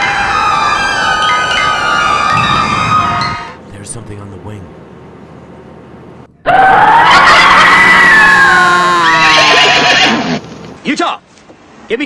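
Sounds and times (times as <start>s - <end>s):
loud scream falling in pitch: 0.0s - 3.6s, 6.4s - 10.2s.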